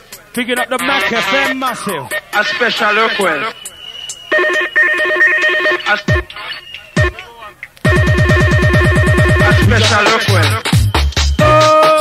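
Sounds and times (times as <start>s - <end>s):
high steady tone: 0.4s - 11.8s
electronic telephone ring: 4.3s - 7.2s, 7.9s - 10.6s.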